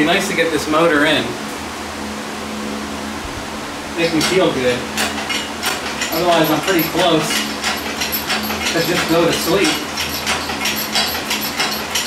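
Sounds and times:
fans rushing air: 0.0 - 12.0
low hum: 0.8 - 8.7.

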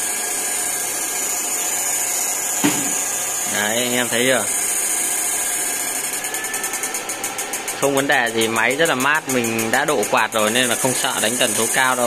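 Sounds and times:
inverter hiss and whine: 0.0 - 12.0
rapid regular pulsing: 0.2 - 12.0.

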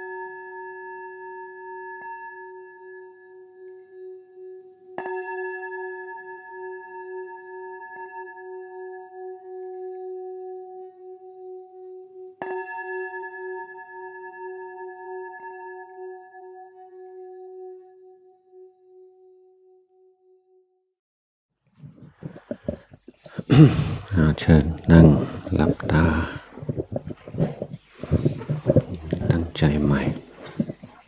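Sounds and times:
singing bowl ringing: 0.0 - 20.4.

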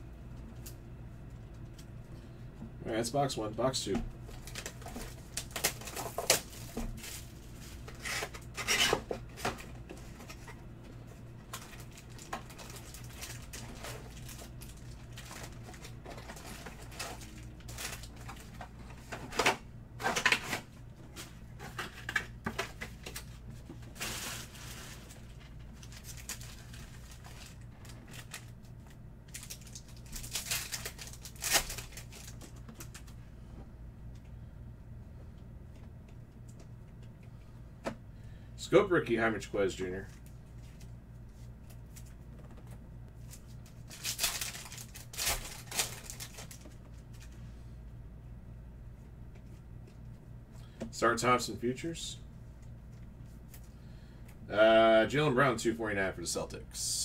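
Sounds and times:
low hum: 0.0 - 57.0
plastic wrapping tearing and crinkling: 4.3 - 10.5, 11.4 - 19.4, 23.9 - 33.2, 43.2 - 47.3.

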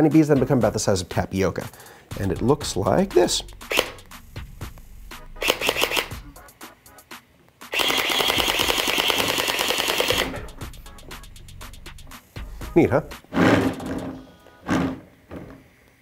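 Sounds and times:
gel-bead blaster firing bursts: 3.6 - 4.0, 5.2 - 6.5, 7.7 - 10.5.

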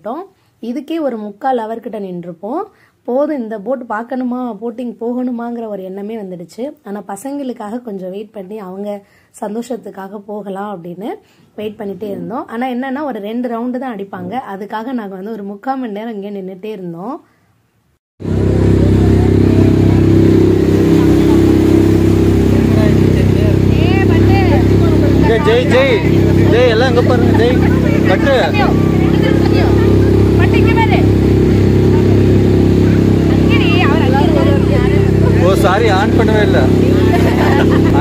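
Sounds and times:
motorboat engine droning: 18.2 - 38.0
excited voices of passengers: 23.6 - 32.2, 32.8 - 38.0.

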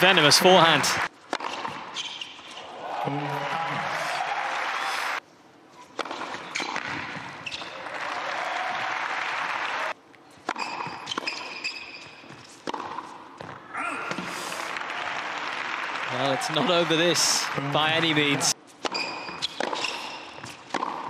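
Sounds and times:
crowd applause: 0.0 - 1.1, 2.8 - 5.2, 7.8 - 10.0, 14.5 - 18.6
tennis ball struck by rackets: 1.3 - 1.9, 6.0 - 7.3, 12.6 - 14.2, 18.8 - 21.0
tennis ball bouncing on court: 1.3 - 2.2, 6.0 - 7.8, 10.4 - 14.3, 18.8 - 21.0.

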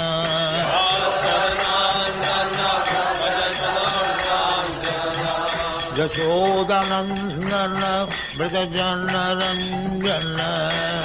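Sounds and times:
hand cymbals striking: 0.0 - 11.0
sustained devotional melody: 0.0 - 11.0.

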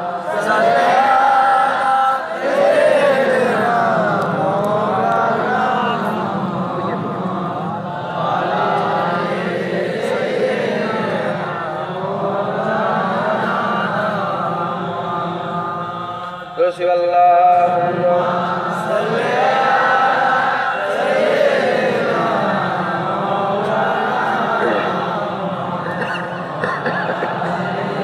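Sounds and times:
person chanting devotional refrain: 0.0 - 28.0.

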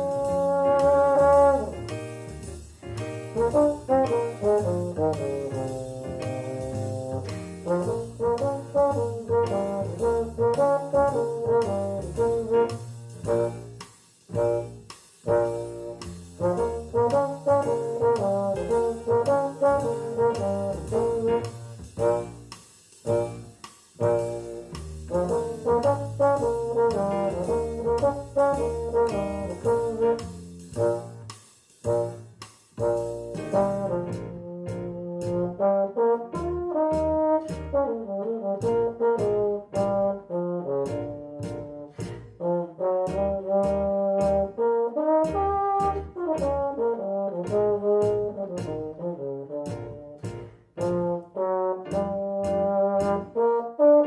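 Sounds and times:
euphonium playing jazz melody: 0.0 - 54.0.

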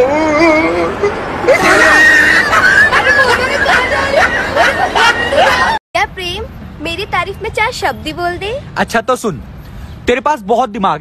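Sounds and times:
person making rising vocal sounds: 0.0 - 2.9.

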